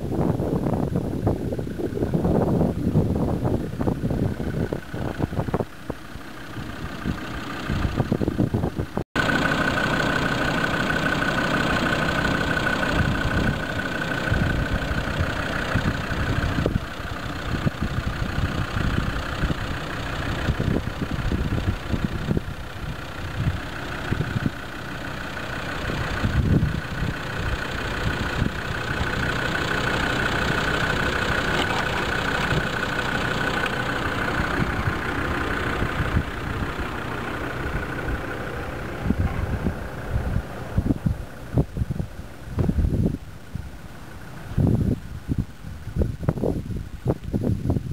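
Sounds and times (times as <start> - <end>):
wind and handling rumbles on microphone: 0.0 - 9.0, 12.9 - 24.6, 25.9 - 47.9
car engine idling: 0.0 - 47.9.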